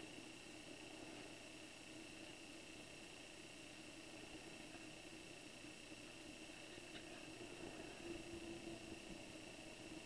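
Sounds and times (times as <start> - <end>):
high whine: 0.0 - 10.0
steady low hiss: 0.0 - 10.0
thin constant hum: 0.0 - 10.0.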